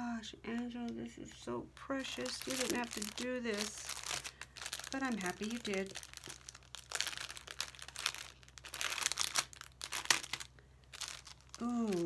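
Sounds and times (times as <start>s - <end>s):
plastic bag crinkling: 1.9s - 12.0s.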